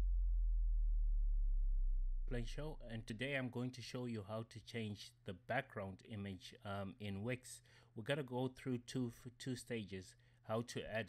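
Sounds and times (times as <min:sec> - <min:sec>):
deep electronic hum: 0:00.0 - 0:03.2.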